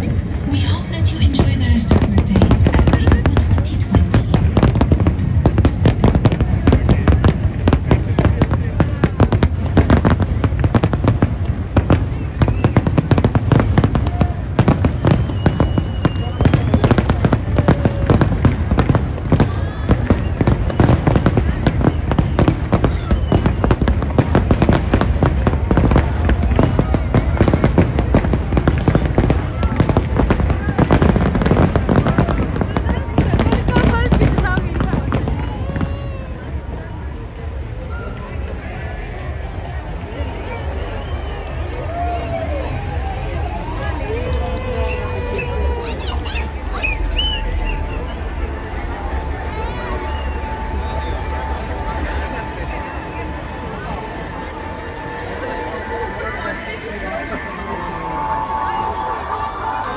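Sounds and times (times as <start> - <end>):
fireworks bangs and crackles: 0.0 - 59.9.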